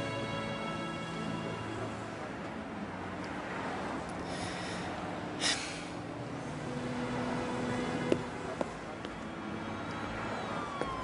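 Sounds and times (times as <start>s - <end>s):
street background noise: 0.0s - 11.0s.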